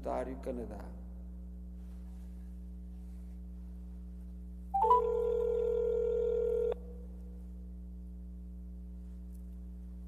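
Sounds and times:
low electrical hum: 0.0s - 10.0s
electronic telephone tone: 4.8s - 6.8s.

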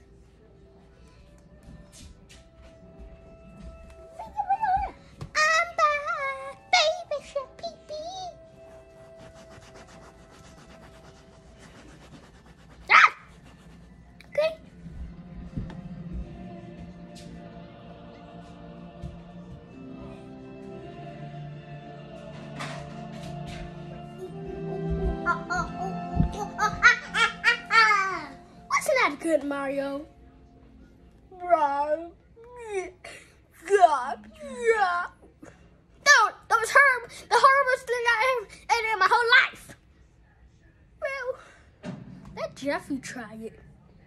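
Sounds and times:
background music with held tones: 0.0s - 37.9s
person laughing high-pitched: 24.9s - 28.1s.

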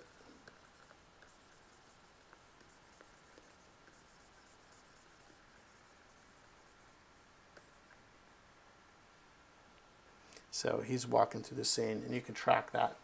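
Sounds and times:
stylus scratching on tablet: 0.0s - 8.0s.

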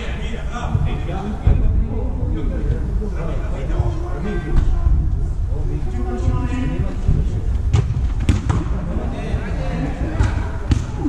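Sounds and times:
football kick thuds: 7.7s - 8.8s, 10.2s - 11.0s.

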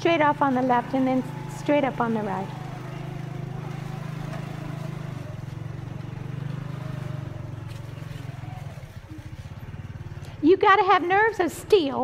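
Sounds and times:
motorbike engine running: 0.0s - 12.0s.

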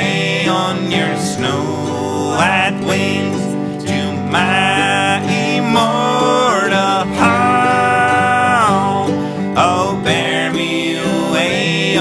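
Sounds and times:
men singing in harmony: 0.0s - 12.0s
plucked acoustic strings: 0.0s - 12.0s.

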